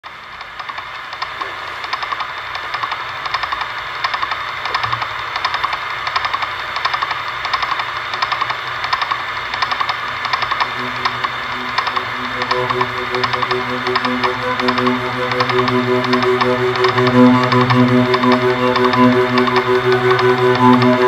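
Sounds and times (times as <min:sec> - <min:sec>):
pulsing hissing electronic noise: 0:10.4 - 0:21.0
low sustained tones: 0:10.5 - 0:21.0.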